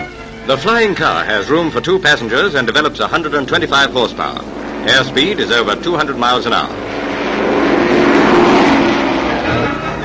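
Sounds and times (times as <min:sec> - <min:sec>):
propeller engine passing by: 0:00.1 - 0:10.0.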